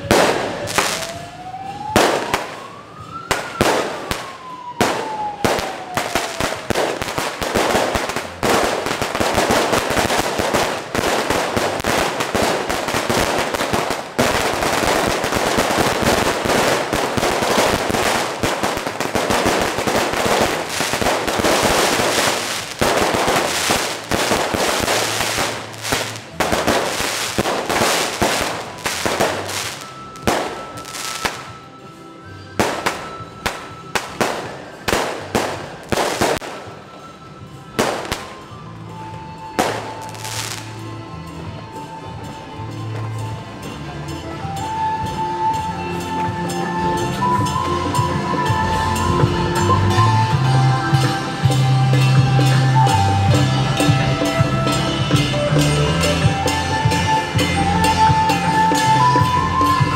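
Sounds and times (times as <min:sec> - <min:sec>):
wailing siren-like tone: 0:00.0 - 0:31.8
firecrackers crackling: 0:00.0 - 0:40.9.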